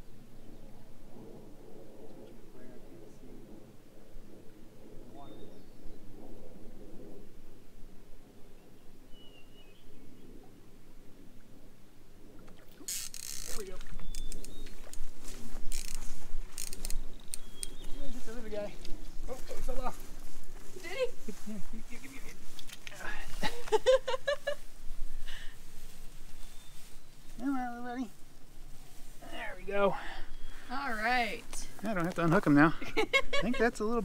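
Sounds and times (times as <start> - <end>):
grass rustling against microphone: 0.0 - 34.0.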